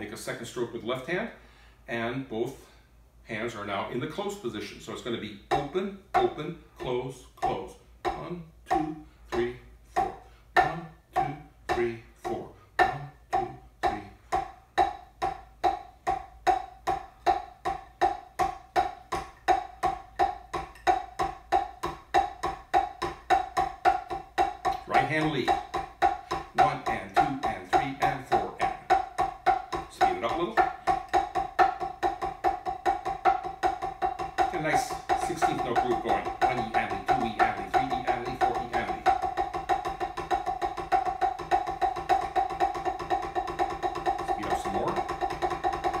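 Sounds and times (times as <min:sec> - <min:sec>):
drumsticks tapping practice pad: 0:05.0 - 0:46.0.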